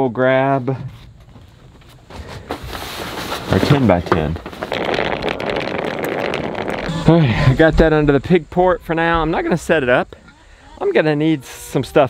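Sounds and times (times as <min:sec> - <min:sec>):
fabric bag scraping on asphalt: 0:02.6 - 0:07.6.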